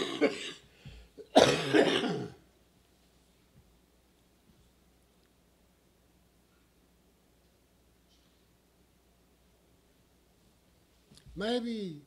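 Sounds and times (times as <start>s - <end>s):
man coughing hard: 0.0s - 0.6s, 1.2s - 2.4s.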